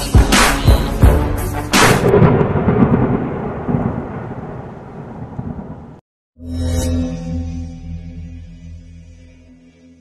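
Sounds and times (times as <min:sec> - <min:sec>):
heavy hip hop beats: 0:00.0 - 0:01.4
thunder rumble: 0:01.8 - 0:06.0.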